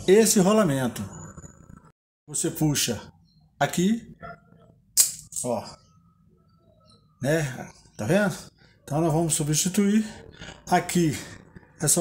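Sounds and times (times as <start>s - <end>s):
sharp metallic clink: 5.0s - 5.6s.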